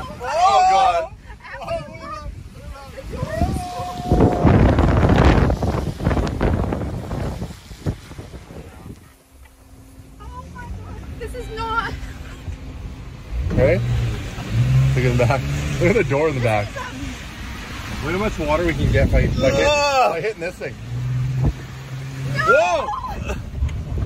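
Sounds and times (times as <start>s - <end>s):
voices: 0.0s - 5.4s, 8.4s - 23.6s
storm wind gusting on microphone: 1.1s - 9.2s.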